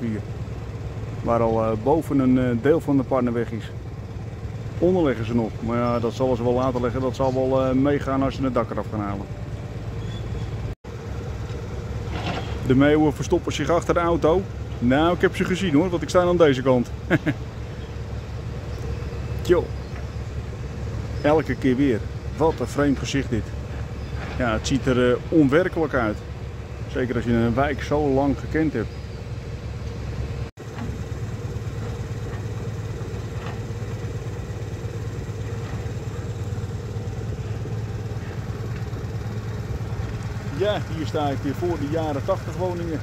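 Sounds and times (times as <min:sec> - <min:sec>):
man speaking: 0:00.0 - 0:00.3, 0:01.2 - 0:03.8, 0:04.8 - 0:09.3, 0:12.7 - 0:17.0, 0:21.2 - 0:23.6, 0:24.4 - 0:26.2, 0:26.9 - 0:28.9, 0:40.5 - 0:43.0
low outdoor rumble: 0:00.0 - 0:43.0
motorbike engine droning: 0:00.0 - 0:43.0.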